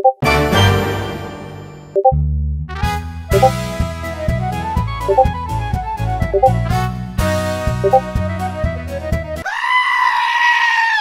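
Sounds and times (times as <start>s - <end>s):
music: 0.2s - 9.4s
long high scream: 9.4s - 11.0s.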